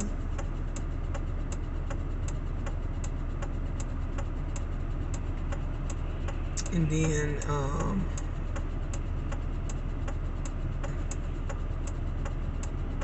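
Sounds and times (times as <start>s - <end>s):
car engine humming: 0.0s - 13.0s
indicator relay ticking: 0.0s - 13.0s.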